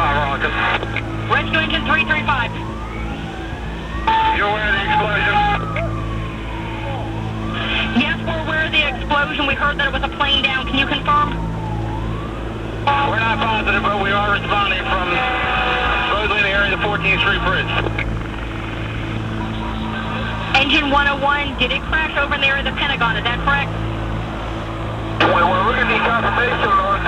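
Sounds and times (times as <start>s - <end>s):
siren wailing: 0.0s - 27.0s.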